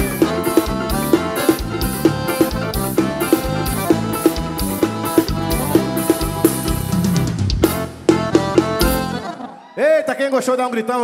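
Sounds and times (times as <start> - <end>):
drums quick steady beat: 0.0 - 9.3
live band playing: 0.0 - 9.6.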